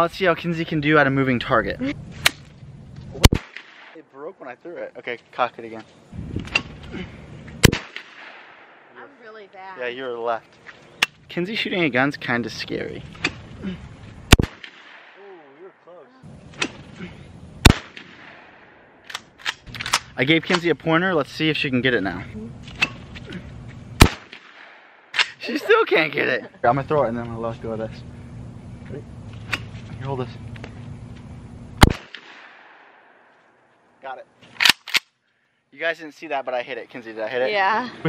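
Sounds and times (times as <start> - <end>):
shotgun shots: 3.2 - 4.0, 7.6 - 9.1, 14.3 - 15.5, 17.6 - 20.6, 24.0 - 25.4, 31.8 - 33.2.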